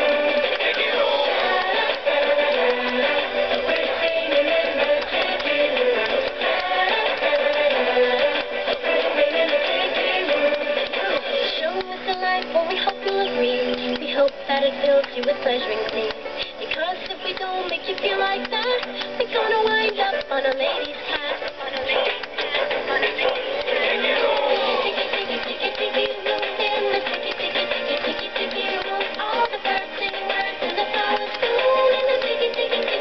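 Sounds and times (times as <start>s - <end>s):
song through tinny speakers: 0.0s - 33.0s.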